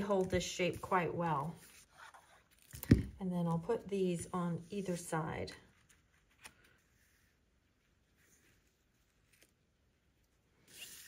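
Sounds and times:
paper card handling: 0:05.7 - 0:07.3, 0:08.2 - 0:10.0.

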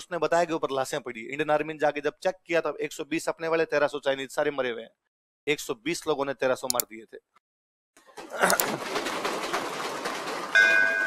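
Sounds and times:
people clapping: 0:08.2 - 0:11.0.

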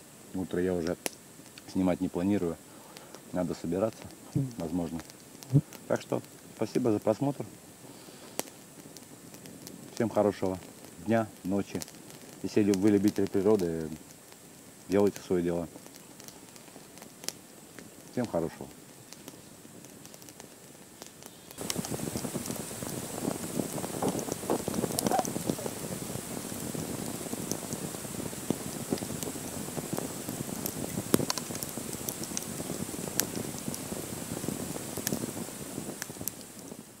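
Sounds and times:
campfire crackling and hissing: 0:00.0 - 0:37.0
sharp fire pops: 0:00.1 - 0:37.0.

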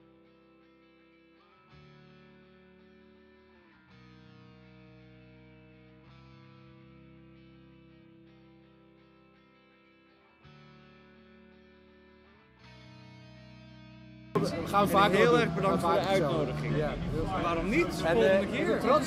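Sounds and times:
held guitar chords: 0:00.0 - 0:19.0.

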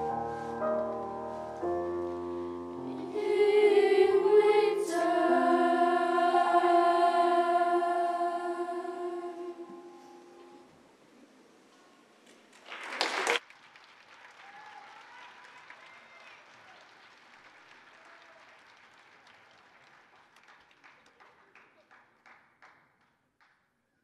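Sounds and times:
audience applauding: 0:12.3 - 0:22.8.

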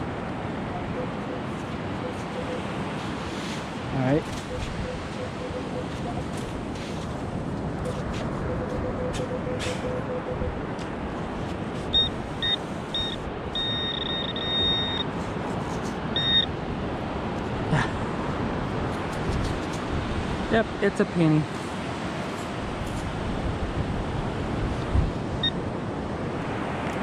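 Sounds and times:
metal detector beeping: 0:04.4 - 0:06.3, 0:07.8 - 0:10.6, 0:11.9 - 0:15.2, 0:16.1 - 0:16.5.

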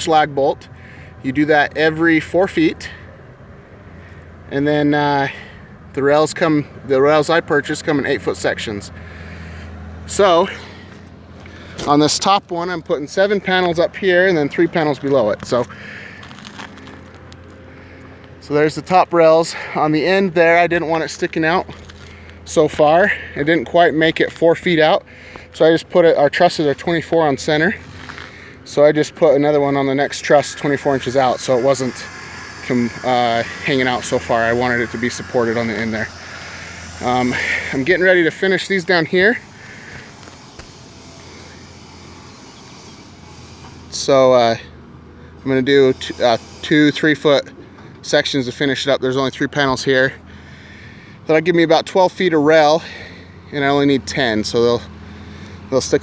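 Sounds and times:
low hum: 0:20.4 - 0:48.0.

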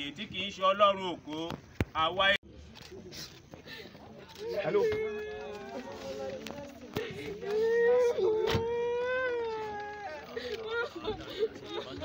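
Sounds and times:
woman wailing: 0:07.5 - 0:11.1.

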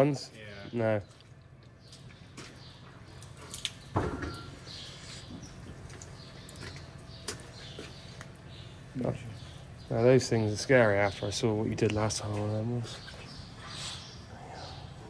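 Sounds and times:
low steady hum: 0:00.0 - 0:15.0.

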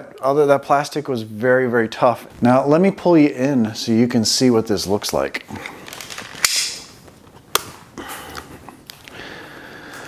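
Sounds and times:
camera handling rustle: 0:05.6 - 0:09.1.

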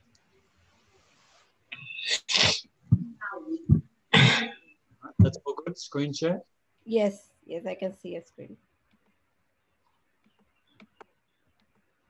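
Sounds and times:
person sneezing: 0:01.8 - 0:02.6, 0:04.2 - 0:04.6.

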